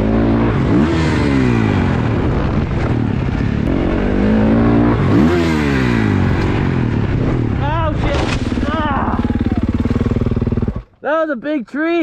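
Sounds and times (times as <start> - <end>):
dirt bike engine running: 0.0 - 11.9.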